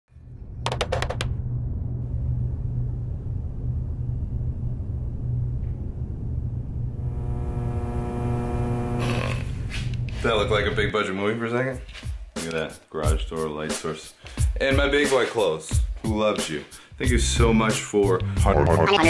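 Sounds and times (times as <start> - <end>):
steady low rumble: 0.2 - 10.9
steady pitched hum: 1.9 - 10.9.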